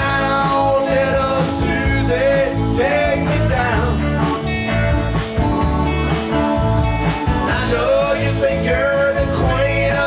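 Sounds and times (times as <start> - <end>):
men singing: 0.0 - 4.2, 7.4 - 10.0
rock band playing: 0.0 - 10.0.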